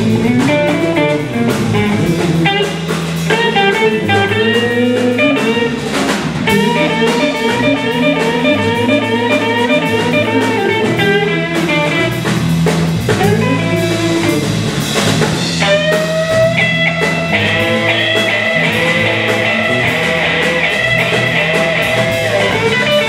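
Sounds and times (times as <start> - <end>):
drum kit: 0.0 - 23.0
electric bass: 0.0 - 23.0
electric guitar with bent notes: 0.0 - 23.0.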